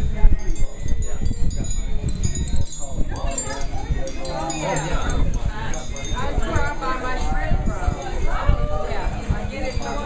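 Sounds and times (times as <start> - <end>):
indistinct conversation: 0.0 - 10.0.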